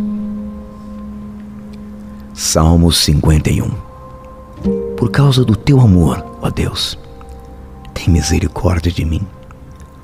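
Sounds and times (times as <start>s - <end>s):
soft ambient music: 0.0s - 10.0s.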